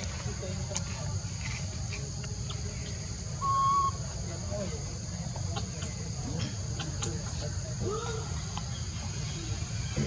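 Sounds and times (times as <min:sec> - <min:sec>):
high drone of insects: 0:00.0 - 0:10.0
whistle-like animal call: 0:03.4 - 0:04.0.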